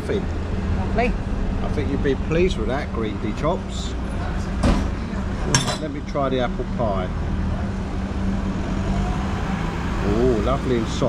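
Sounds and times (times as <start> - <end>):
road traffic drone: 0.0 - 11.0
vehicle engine humming: 0.0 - 11.0.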